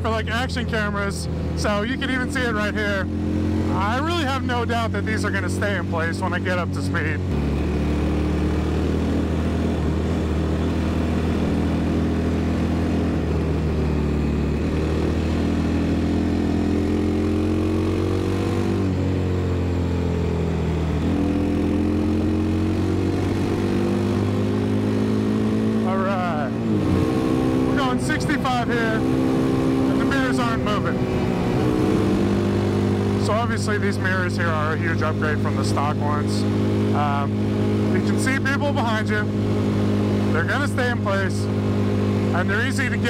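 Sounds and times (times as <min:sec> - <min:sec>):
motorcycle engine running: 0:00.0 - 0:43.0.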